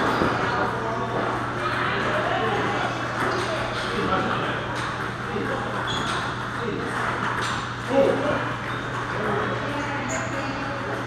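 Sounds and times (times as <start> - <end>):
chatter in a large hall: 0.0 - 11.0.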